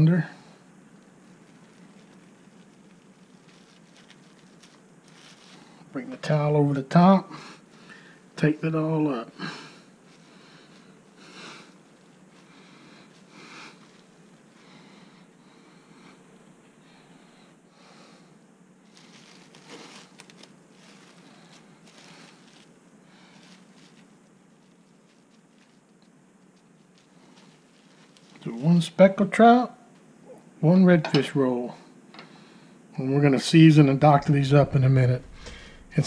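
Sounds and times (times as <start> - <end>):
cling wrap crinkling: 0.8 - 6.0, 18.8 - 28.7, 34.1 - 36.0
cloth rustling: 1.0 - 5.9, 18.8 - 28.6.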